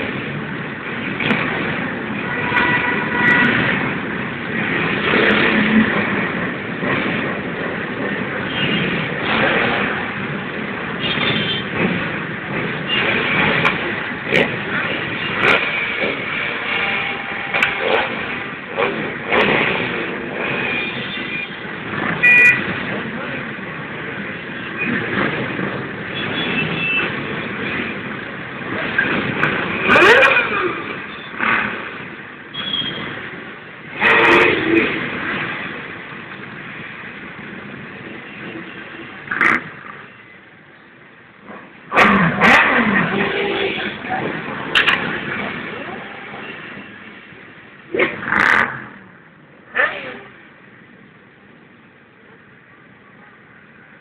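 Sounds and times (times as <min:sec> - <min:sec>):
motorcycle engines revving: 0:00.0 - 0:40.1, 0:41.4 - 0:50.4.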